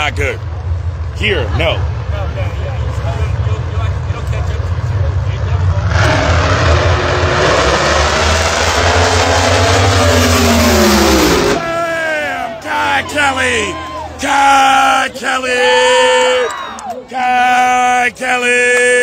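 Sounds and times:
low rumble: 0.0 - 12.1
drag racing engines at full throttle: 0.0 - 16.3.

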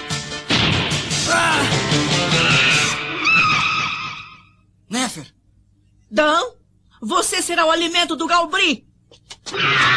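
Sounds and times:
background music: 0.0 - 3.2
explosion: 0.5 - 1.2.

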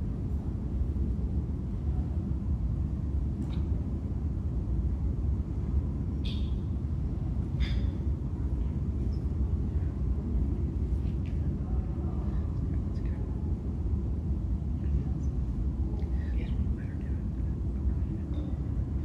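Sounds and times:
low room rumble: 0.0 - 19.0.

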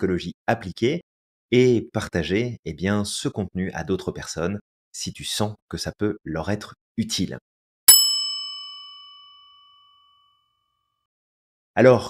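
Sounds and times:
bright bell ding: 7.9 - 10.2.

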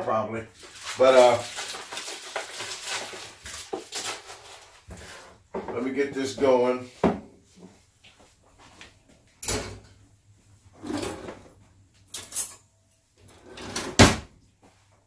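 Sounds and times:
kitchen knocks and clunks: 7.0 - 7.3, 9.4 - 10.0.

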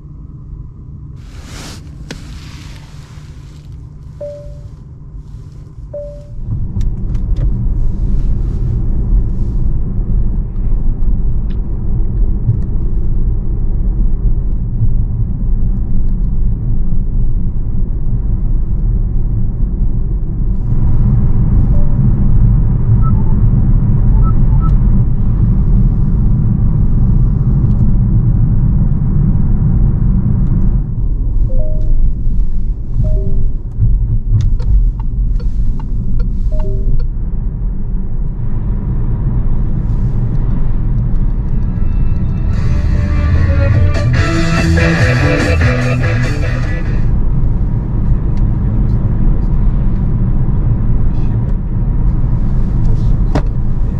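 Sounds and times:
road and tyre rumble: 0.0 - 53.9
windscreen washer spraying: 1.2 - 4.2
wipers sweeping: 1.2 - 4.7
faint short tones: 4.1 - 4.8, 5.9 - 6.4.

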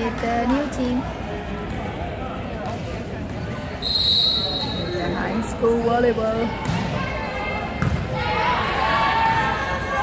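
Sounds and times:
murmur of voices: 0.0 - 10.0
referee's whistle blast: 3.8 - 5.0.

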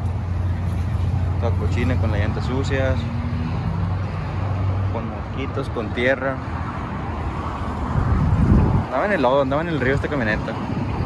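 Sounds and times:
engine hum: 0.0 - 11.0
street traffic rumble: 0.0 - 11.0.

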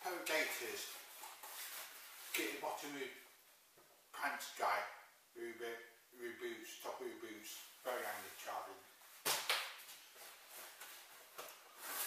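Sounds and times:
rucksack fabric rustling: 0.2 - 2.6, 7.9 - 12.0.

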